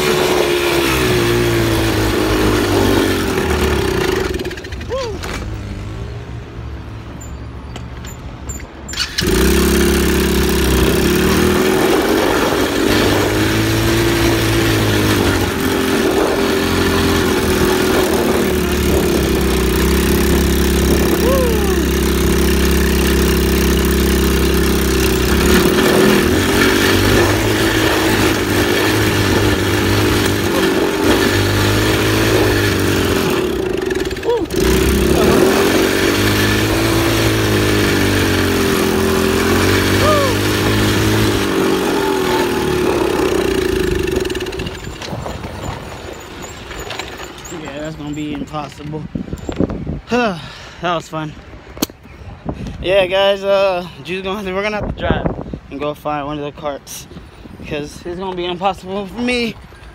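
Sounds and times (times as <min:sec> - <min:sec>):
atv engine running: 0:00.0 - 0:06.0, 0:08.9 - 0:49.6
wind rushing over microphone: 0:10.5 - 0:46.4, 0:47.8 - 0:50.2, 0:54.0 - 0:58.8.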